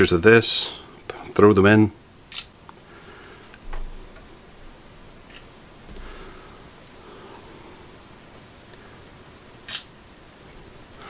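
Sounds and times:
camera shutter click: 2.3 - 2.5, 5.3 - 5.5, 9.7 - 9.9.

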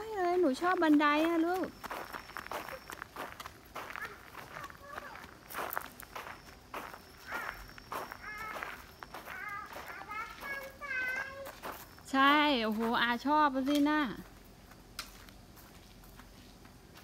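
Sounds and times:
woman's voice: 0.0 - 1.8, 12.0 - 14.3
footsteps on gravel: 0.0 - 17.0
child-like vocal sounds: 3.8 - 5.4, 7.2 - 11.7.

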